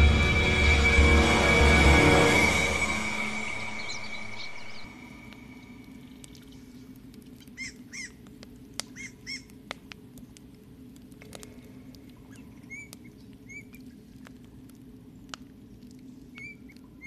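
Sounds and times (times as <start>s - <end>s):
dramatic soundtrack music: 0.0s - 6.0s
fire crackling: 0.0s - 17.0s
bird chirping: 2.2s - 6.8s.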